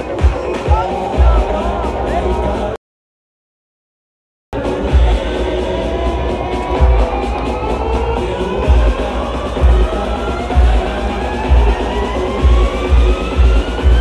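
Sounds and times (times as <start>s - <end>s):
electronic dance music: 0.0s - 2.8s, 4.5s - 14.0s
heavy bass kicks: 4.8s - 14.0s.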